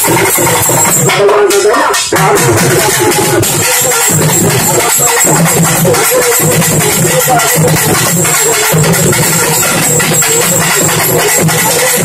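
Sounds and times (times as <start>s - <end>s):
drum ensemble playing: 0.0s - 12.0s.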